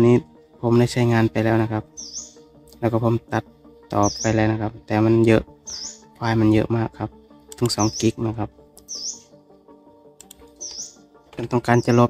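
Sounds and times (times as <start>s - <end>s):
background music with sustained chords: 0.0s - 12.0s.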